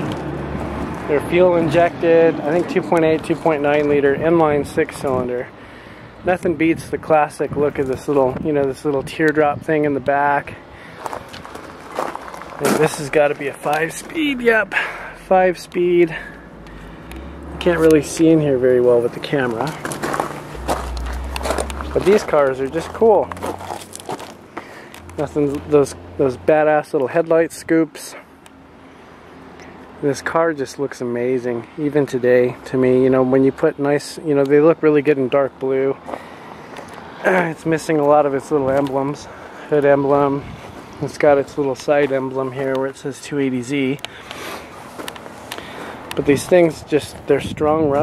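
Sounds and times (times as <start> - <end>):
faint outdoor background noise: 0.0 - 48.0
steady low rumble: 10.8 - 24.5
footsteps on gravel: 10.8 - 25.7, 36.0 - 42.8, 43.7 - 47.3.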